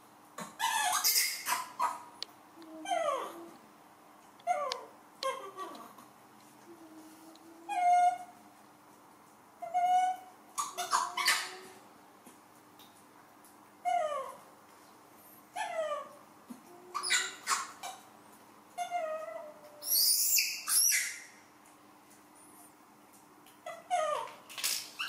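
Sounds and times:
baby monkeys coo calls: 0.6 - 2.0, 9.6 - 11.8, 16.8 - 18.1, 18.8 - 21.4
harsh monkey squeal: 0.6 - 2.0, 17.0 - 18.0, 19.8 - 21.3.

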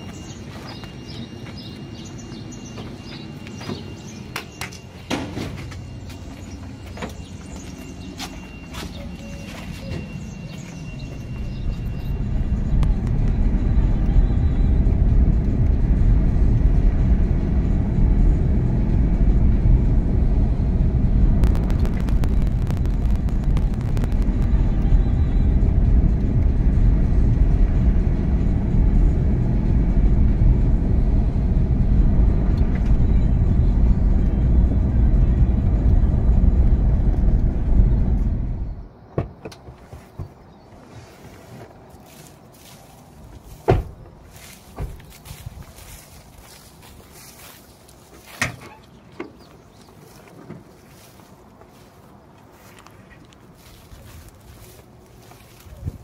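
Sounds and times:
vehicle rumbling on dirt track: 0.0 - 56.0.

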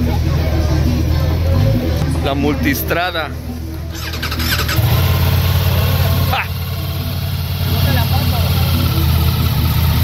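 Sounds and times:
motorcycle engine idling: 3.9 - 10.0.

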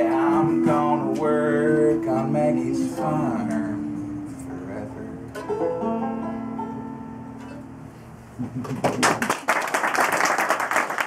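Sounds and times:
banjo and mandolin chord ringing: 0.0 - 7.9.

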